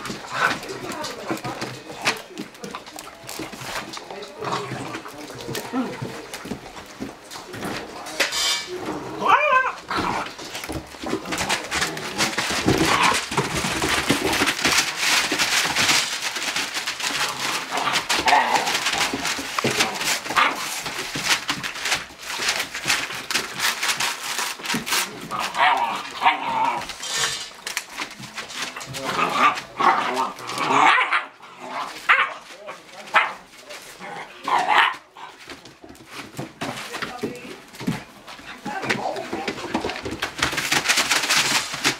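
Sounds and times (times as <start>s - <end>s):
puppies scuffling on bedding: 0.0s - 41.9s.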